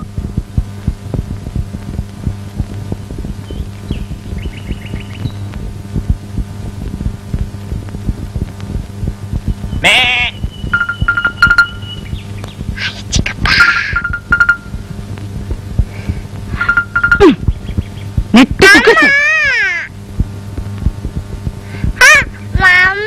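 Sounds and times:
old film soundtrack hum and crackle: 0.0s - 23.0s.

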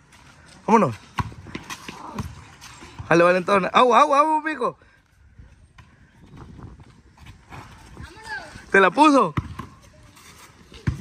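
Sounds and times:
children running on pavement: 0.0s - 11.0s.

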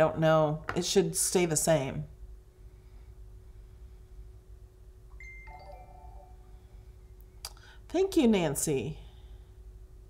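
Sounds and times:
faint steady hum: 0.0s - 10.0s
electronic alert chime: 5.1s - 6.6s.

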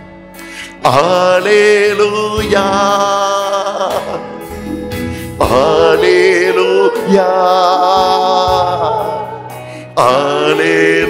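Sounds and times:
man singing worship song: 0.6s - 11.0s.

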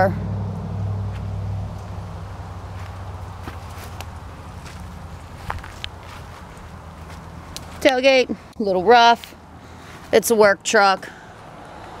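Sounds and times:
low engine hum: 0.0s - 10.2s
footsteps on grass: 1.1s - 2.0s, 2.6s - 8.6s.

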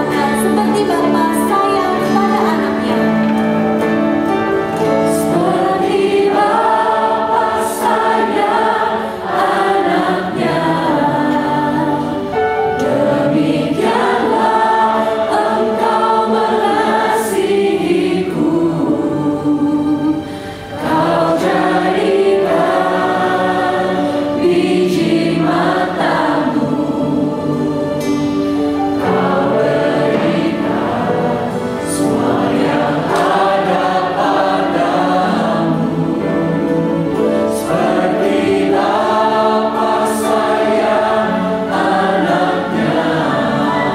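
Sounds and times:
group singing worship song: 0.0s - 43.9s
piano and keyboard: 0.0s - 43.9s.

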